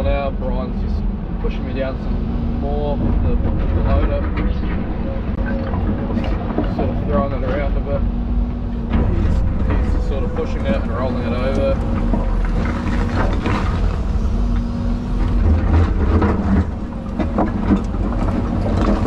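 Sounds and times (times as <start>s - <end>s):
diesel engine drone: 0.0s - 19.0s
hydraulic whine: 0.0s - 19.0s.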